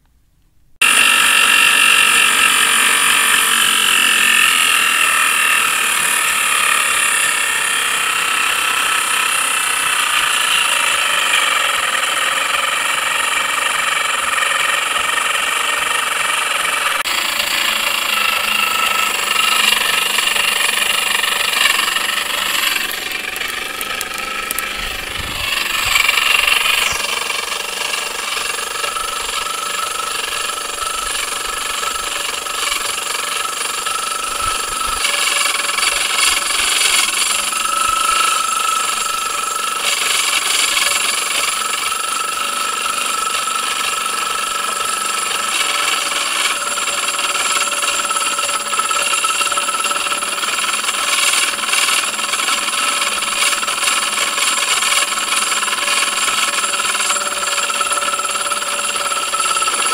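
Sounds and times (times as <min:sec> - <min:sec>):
blower whining: 0:00.8 - 0:59.9
impeller scraping housing: 0:00.8 - 0:59.9.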